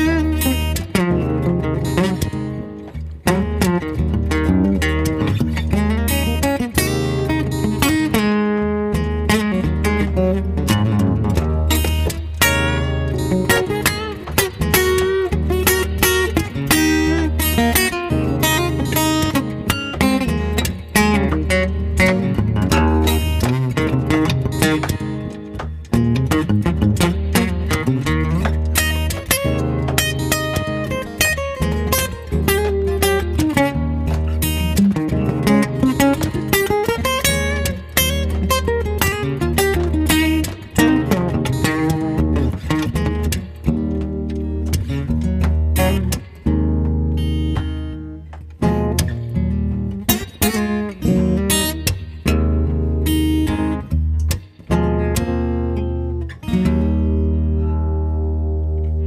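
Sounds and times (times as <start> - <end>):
acoustic guitar playing: 0.0 - 59.0.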